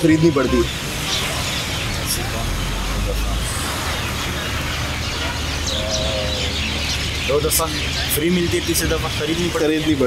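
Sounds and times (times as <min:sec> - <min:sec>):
birds chirping faintly: 0:00.0 - 0:10.0
traffic rumble: 0:00.0 - 0:10.0.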